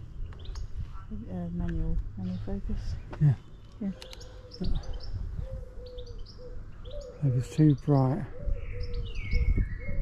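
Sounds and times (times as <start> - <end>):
small birds chirping: 0.0 - 10.0
pigeon cooing: 4.0 - 7.6, 8.2 - 10.0.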